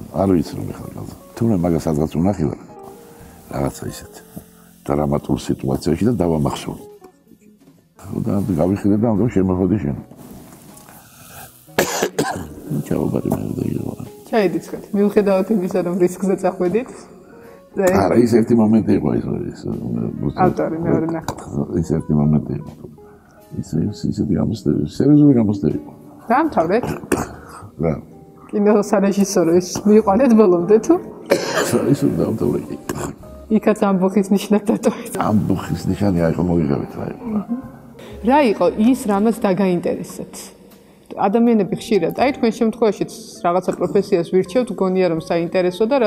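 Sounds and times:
man coughing: 11.8s - 12.6s, 26.9s - 27.6s, 31.3s - 32.1s.

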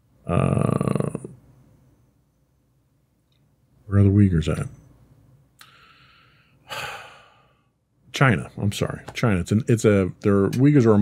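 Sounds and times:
person sighing: 5.6s - 7.6s
faint breath: 5.6s - 7.8s.

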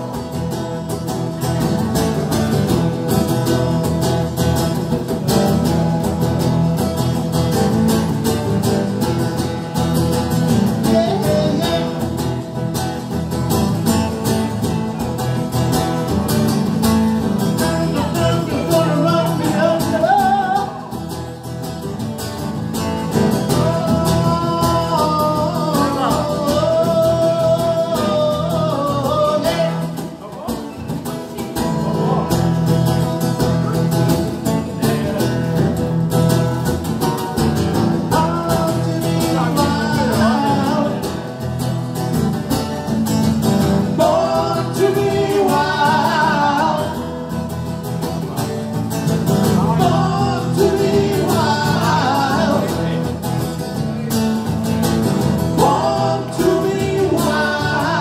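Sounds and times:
electric guitar: 0.0s - 58.0s
man singing: 10.0s - 13.5s, 17.1s - 21.2s, 22.7s - 30.4s, 37.8s - 41.4s, 43.6s - 47.5s, 49.2s - 54.1s, 55.2s - 58.0s.

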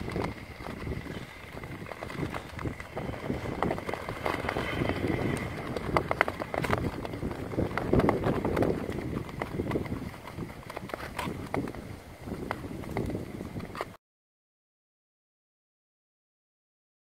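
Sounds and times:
blades clicking on ice: 0.0s - 14.0s
skate blades scraping on ice: 0.0s - 14.0s.

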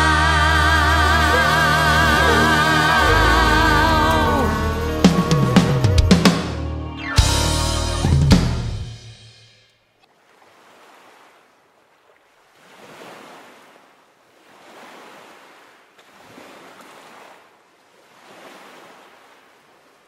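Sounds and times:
waves washing against shore: 12.5s - 20.0s.

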